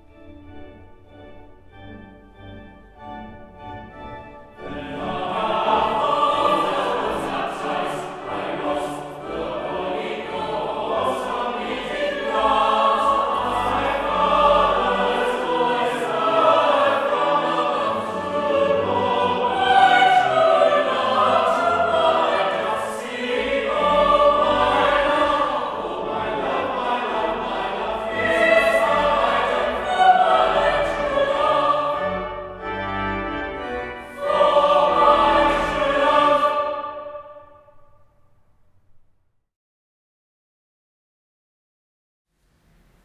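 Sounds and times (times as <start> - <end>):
choir singing a carol: 1.8 - 38.0.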